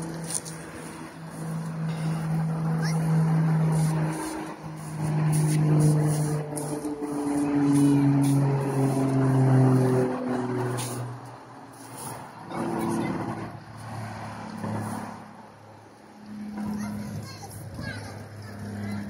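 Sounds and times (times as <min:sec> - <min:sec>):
general traffic noise: 0:00.0 - 0:19.0
heavy vehicle engine drone: 0:00.0 - 0:19.0.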